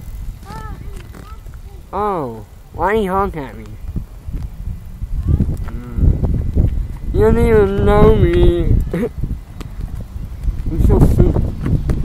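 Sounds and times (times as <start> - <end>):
wind buffeting microphone: 0.0 - 12.0
person low vocal sound: 5.2 - 6.6.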